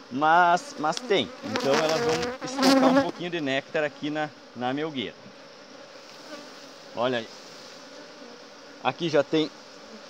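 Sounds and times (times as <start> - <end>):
honeybees humming: 0.0 - 10.0.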